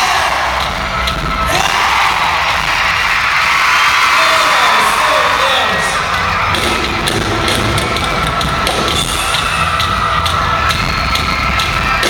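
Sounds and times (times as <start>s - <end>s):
drum hits: 6.1s - 12.0s.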